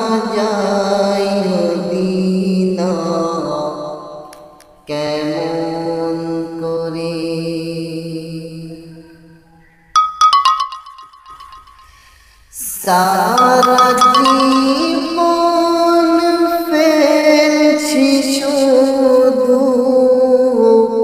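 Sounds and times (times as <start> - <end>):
man singing into microphone: 0.0 - 4.0, 12.6 - 21.0
bright bell-like notes: 10.0 - 12.4, 13.2 - 15.7.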